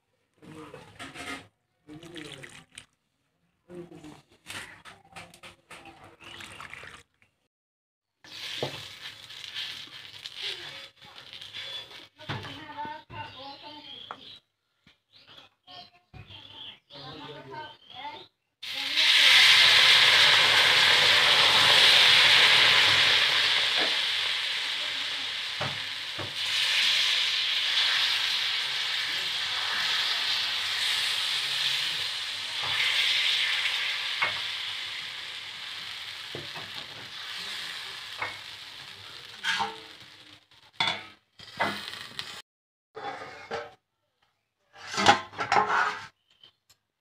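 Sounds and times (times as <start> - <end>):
batter sizzling on a griddle: 8.2 - 12.8, 18.6 - 42.4.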